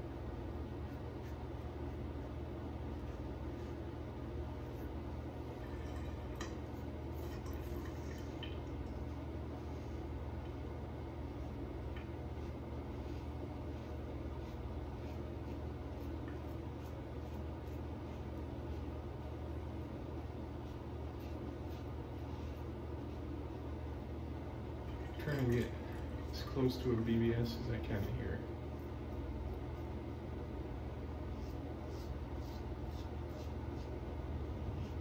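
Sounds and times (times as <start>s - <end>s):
steady low hum: 0.0s - 35.0s
razor scratching through stubble: 12.3s - 19.4s, 20.2s - 23.7s, 31.3s - 34.0s.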